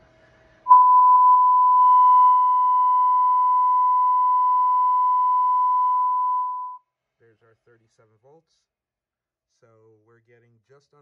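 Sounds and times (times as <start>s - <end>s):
steady sine test tone: 0.7s - 6.8s.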